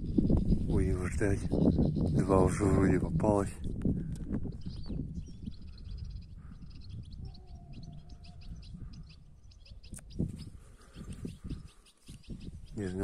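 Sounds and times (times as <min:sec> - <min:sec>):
finches twittering: 0:00.0 - 0:03.5, 0:04.4 - 0:13.0
wind rumble on microphone: 0:00.0 - 0:13.0.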